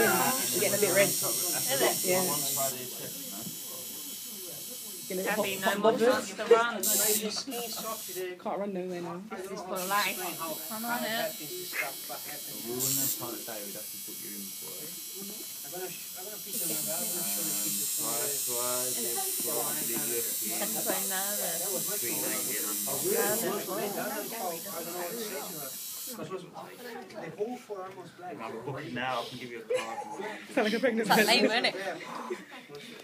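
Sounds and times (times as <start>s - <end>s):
women talking and laughing: 0.0s - 2.5s, 5.0s - 8.1s, 19.0s - 25.3s, 29.1s - 33.0s
tattoo machine buzzing: 0.0s - 6.2s, 6.8s - 8.2s, 9.8s - 26.2s.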